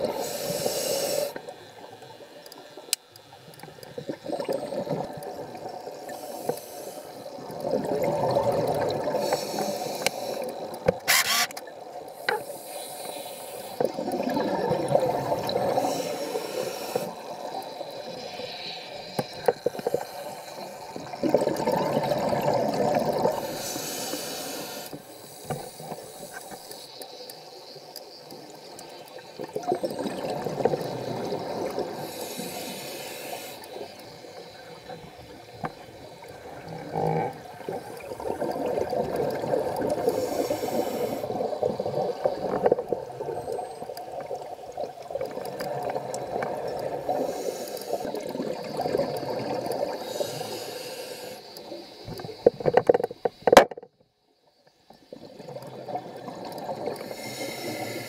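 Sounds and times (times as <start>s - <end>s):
scuba regulator hiss: 0.0s - 1.4s, 6.1s - 7.3s, 9.1s - 11.6s, 12.2s - 13.9s, 15.6s - 17.3s, 23.3s - 27.1s, 31.9s - 34.6s, 40.0s - 42.0s, 47.1s - 48.3s, 49.9s - 52.3s, 57.0s - 58.0s
underwater bubbles gurgling: 0.0s - 53.8s, 54.9s - 58.0s
click: 2.4s - 3.7s, 10.0s - 12.4s.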